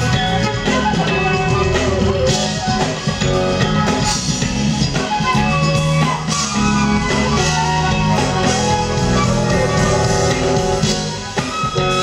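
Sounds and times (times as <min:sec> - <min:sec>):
bass line: 0:00.0 - 0:12.0
drums: 0:00.0 - 0:12.0
flute melody: 0:00.0 - 0:12.0.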